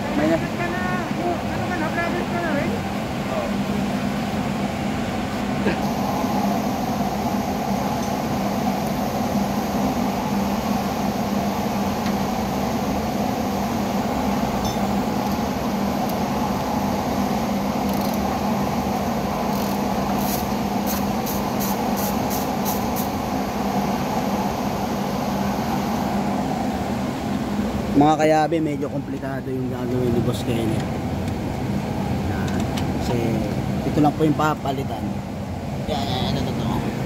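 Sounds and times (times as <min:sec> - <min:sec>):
steady mechanical drone: 0:00.0 - 0:37.0.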